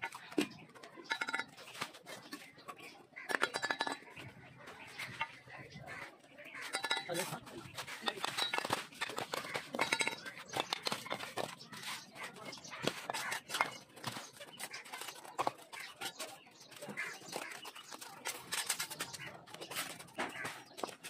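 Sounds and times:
trowels tapping and scraping bricks: 0.0s - 21.0s.

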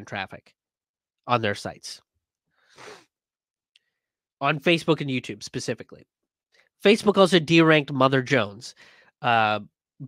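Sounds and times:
man breathing: 2.5s - 3.1s, 8.8s - 9.2s.

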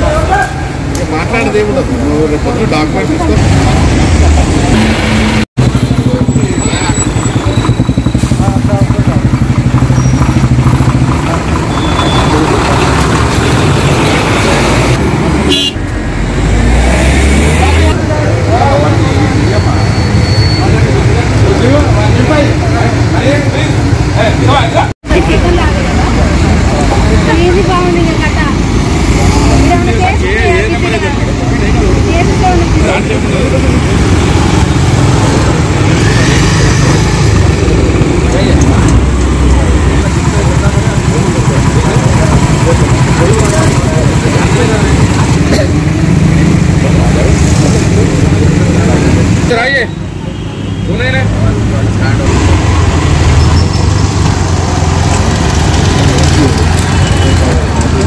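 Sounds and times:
people talking: 0.0s - 5.0s, 5.8s - 10.1s, 11.0s - 15.0s, 17.5s - 50.1s, 50.8s - 52.8s, 53.6s - 58.0s
car engines running: 0.0s - 50.3s, 50.9s - 58.0s
motorcycle engines running: 0.0s - 58.0s
car horns: 15.4s - 15.9s, 49.7s - 51.3s.

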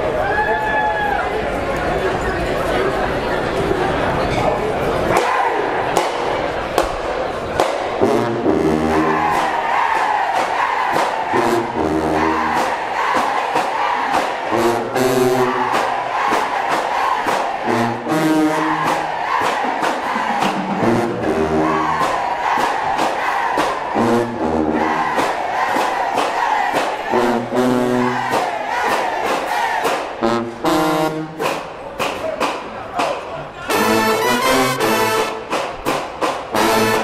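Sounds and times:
crowd shouting: 5.0s - 7.9s, 8.8s - 30.2s
low brass phrase: 8.0s - 9.3s, 11.3s - 12.6s, 14.4s - 15.7s, 17.6s - 18.9s, 20.1s - 22.0s, 23.9s - 25.0s, 30.2s - 31.4s
steady drum beat: 9.0s - 30.4s.

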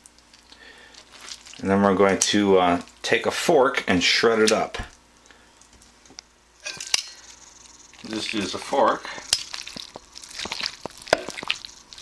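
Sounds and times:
meat being pulled apart: 0.1s - 1.6s, 7.2s - 12.0s.

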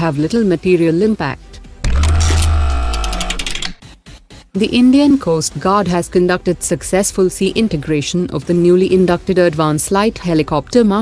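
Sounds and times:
rapid mechanical ticks: 1.9s - 3.8s.

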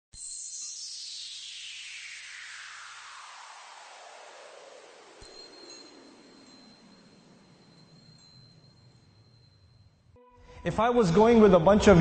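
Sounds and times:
high chime-like tone: 0.2s - 10.8s
hissing whoosh sliding down: 0.6s - 6.6s.

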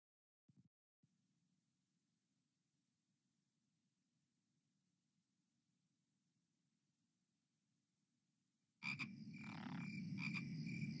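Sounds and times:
frogs croaking: 8.8s - 11.0s.

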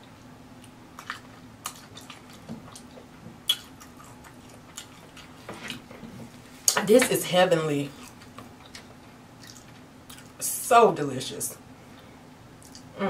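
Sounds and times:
mouth chewing wet smacks: 0.6s - 5.8s, 8.0s - 10.4s, 12.6s - 12.9s.

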